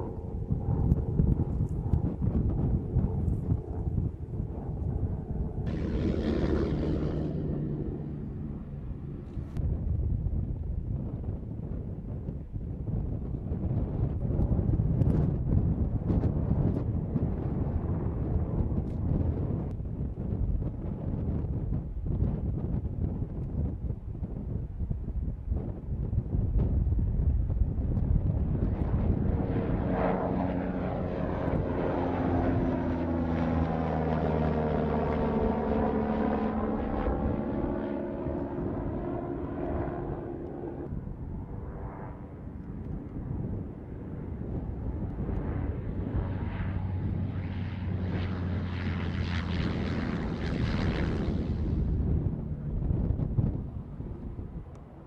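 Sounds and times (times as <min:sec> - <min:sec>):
drone engine flying overhead: 0:00.0 - 0:55.0.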